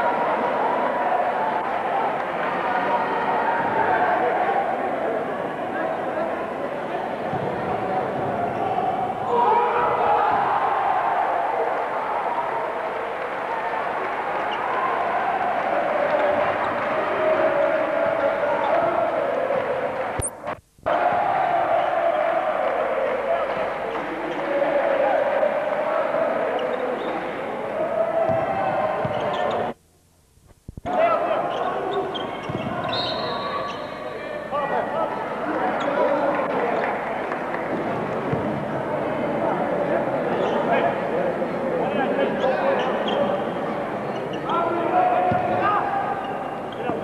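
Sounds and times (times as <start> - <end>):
arena crowd noise: 0.0 - 29.9, 30.6 - 47.0.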